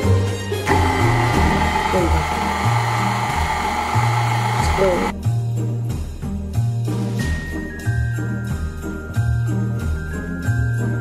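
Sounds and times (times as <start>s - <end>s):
background music: 0.0s - 11.0s
stand mixer motor whine: 0.6s - 5.1s.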